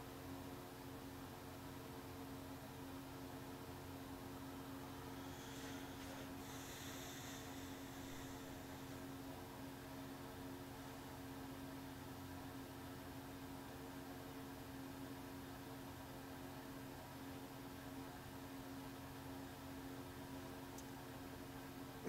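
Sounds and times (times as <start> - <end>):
low even hum: 0.0 - 22.0
faint steady hiss: 4.8 - 9.8.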